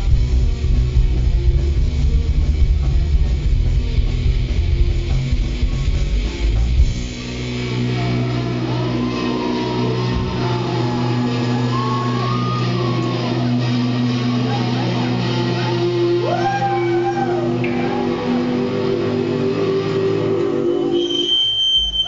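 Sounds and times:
live rock band playing: 0:00.0 - 0:21.2
droning chord with sliding notes: 0:06.4 - 0:21.3.

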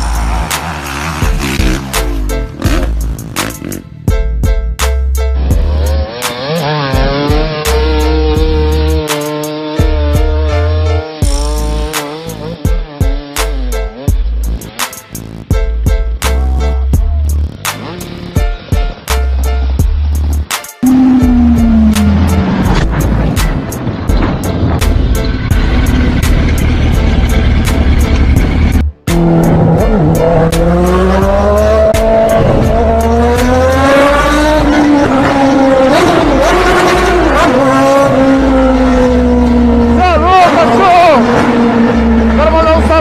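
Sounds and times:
motorcycle engine revving: 0:00.0 - 0:04.1, 0:05.4 - 0:14.8, 0:17.7 - 0:18.4, 0:20.8 - 0:23.7, 0:25.4 - 0:43.0.

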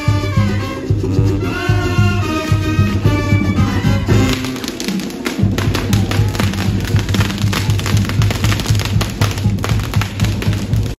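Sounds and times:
brass band music: 0:00.0 - 0:11.0
tuba and bass drum beat: 0:00.0 - 0:11.0
fireworks popping and crackling: 0:04.1 - 0:11.0.

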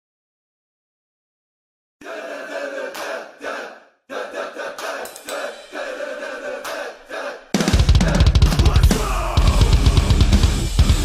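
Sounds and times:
drum kit playing: 0:05.0 - 0:06.0, 0:07.5 - 0:11.0.

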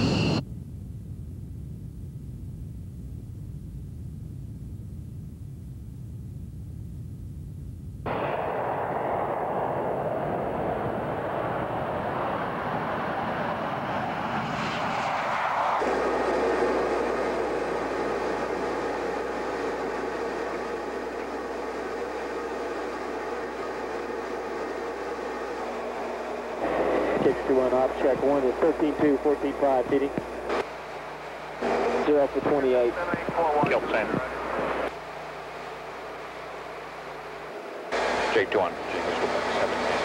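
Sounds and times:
jet engine roar on takeoff: 0:00.0 - 0:00.5, 0:08.0 - 0:40.0
low hum: 0:00.0 - 0:40.0.

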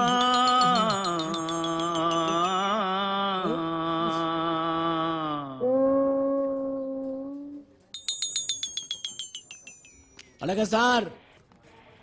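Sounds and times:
man humming low note: 0:00.0 - 0:07.6.

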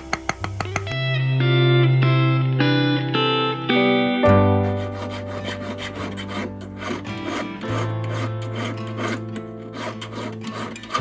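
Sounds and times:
background music: 0:00.0 - 0:11.0
needle file rasping on metal ring: 0:04.8 - 0:11.0.

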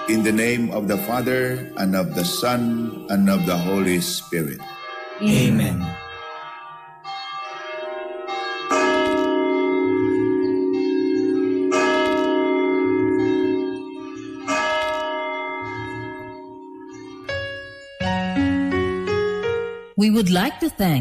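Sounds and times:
bells ringing: 0:00.0 - 0:19.4.

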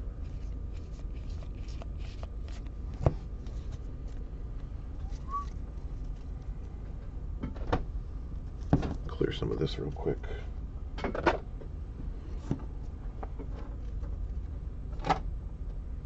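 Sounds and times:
low hum: 0:00.0 - 0:16.0
cards rustling: 0:00.2 - 0:06.7.

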